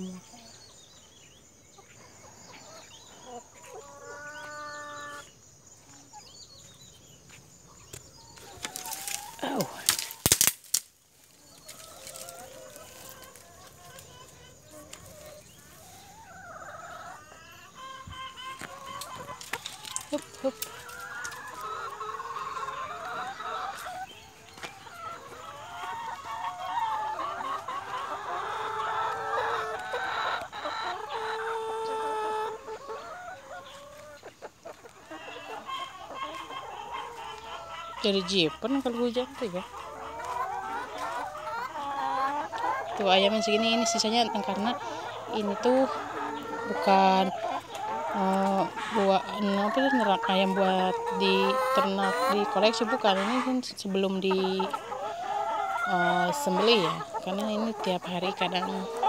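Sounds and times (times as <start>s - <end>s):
chickens clucking: 0.0s - 59.0s.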